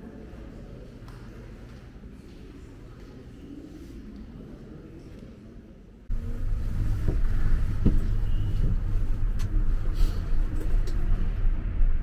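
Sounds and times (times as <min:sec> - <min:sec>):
cars passing: 0:06.1 - 0:12.0
city road traffic rumble: 0:06.1 - 0:12.0.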